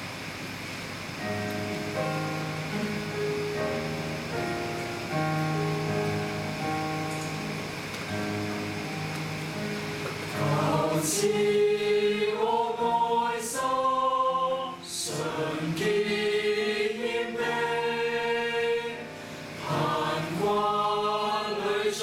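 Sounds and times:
choir singing a hymn: 9.6 - 22.0.

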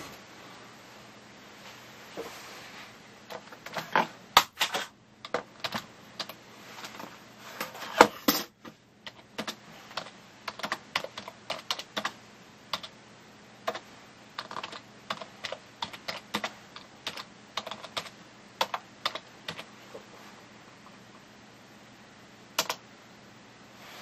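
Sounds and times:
typing on computer keyboard: 4.4 - 6.4, 9.0 - 12.9, 14.4 - 19.7, 22.6 - 22.8.

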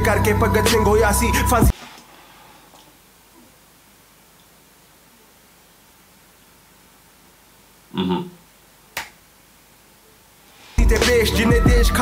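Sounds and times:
man murmuring: 7.9 - 8.4.

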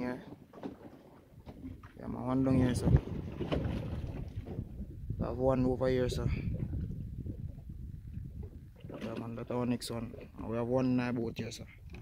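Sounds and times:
choppy water rushing: 0.0 - 12.0
wind buffeting microphone: 1.4 - 12.0.

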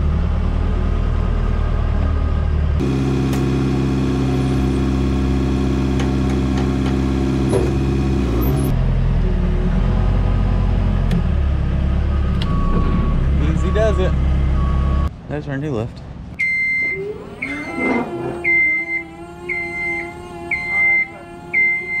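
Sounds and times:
engine humming and idling: 0.0 - 15.2, 16.2 - 22.0.

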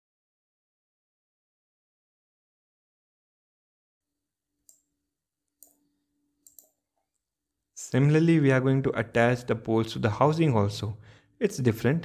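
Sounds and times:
computer mouse clicks: 6.4 - 6.8.

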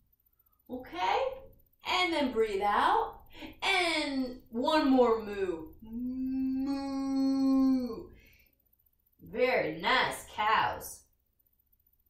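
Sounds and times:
woman imitating cow moo: 5.8 - 8.1.

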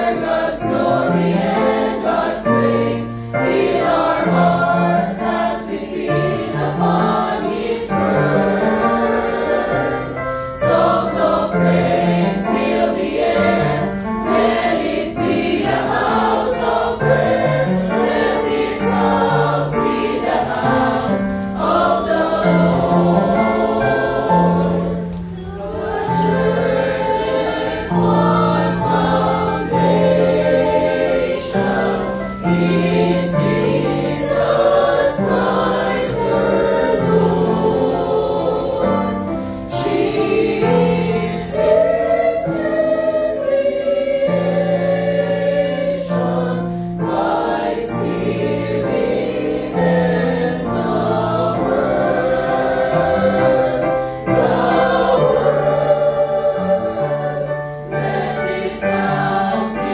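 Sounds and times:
choir singing a hymn: 0.0 - 59.9.

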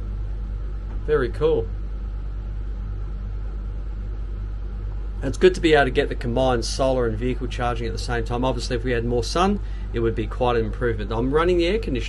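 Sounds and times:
air conditioner droning: 0.0 - 12.0.

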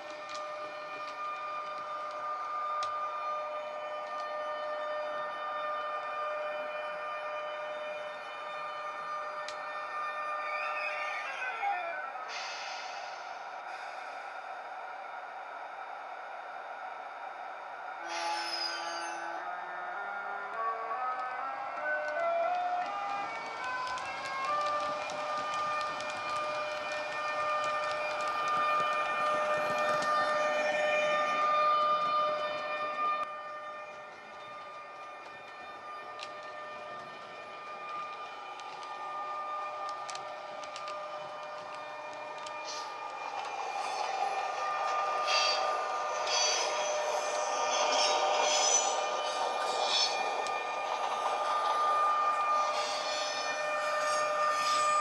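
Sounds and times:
model train running noise and clicks: 0.0 - 14.2, 18.0 - 55.0
electric locomotive traction whine: 0.0 - 55.0.

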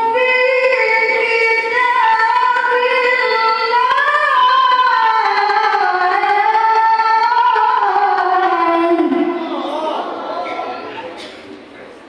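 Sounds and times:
woman chanting melodically: 0.0 - 9.8.

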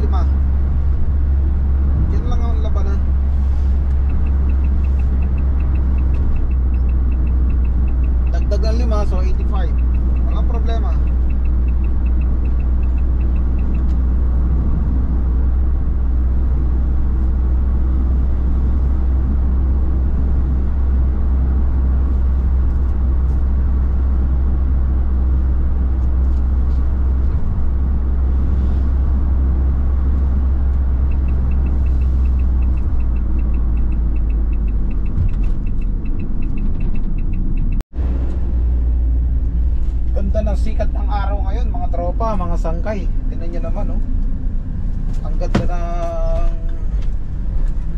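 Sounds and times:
van engine and tyres droning: 0.0 - 47.9.

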